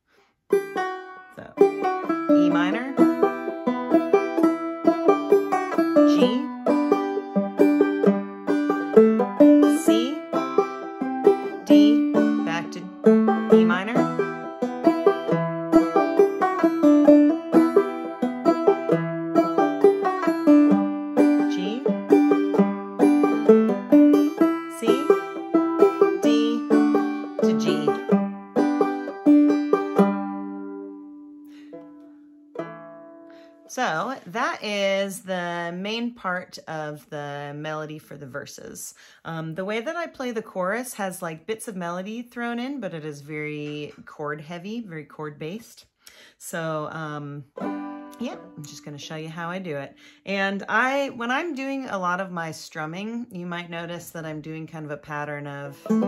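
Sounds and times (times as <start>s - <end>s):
banjo playing folk tune: 0.5s - 34.1s, 47.0s - 52.8s, 53.4s - 56.0s.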